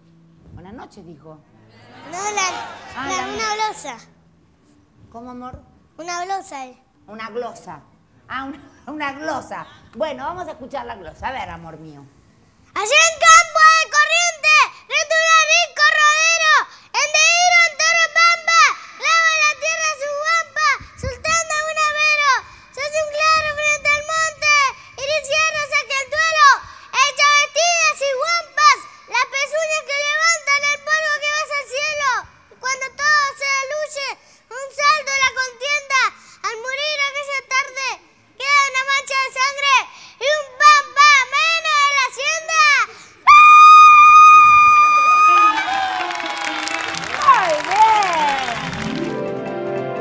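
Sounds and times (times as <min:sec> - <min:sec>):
audience cheering and applause: 0:02.0 - 0:03.6, 0:43.5 - 0:49.6.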